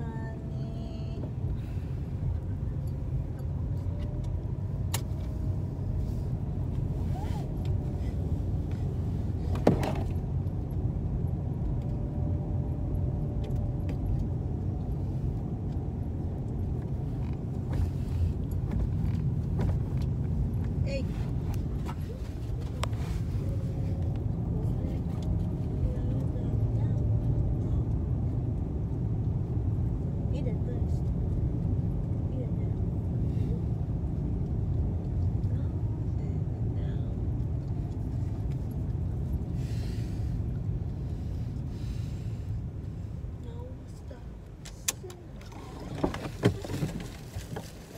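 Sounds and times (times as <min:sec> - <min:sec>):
car engine rumble: 0:00.0 - 0:47.9
road noise: 0:00.0 - 0:47.9.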